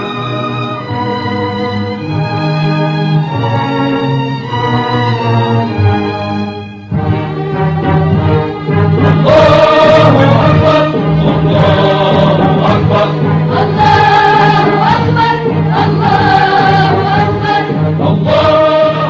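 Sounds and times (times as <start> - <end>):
low musical accompaniment: 0.0 - 19.0
choir singing long held notes: 6.9 - 19.0.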